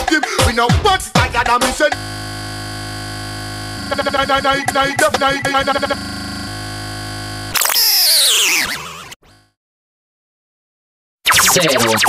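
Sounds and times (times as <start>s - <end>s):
buzzing synth drone: 1.9s - 8.6s
synth sweep falling in pitch: 2.0s - 8.9s.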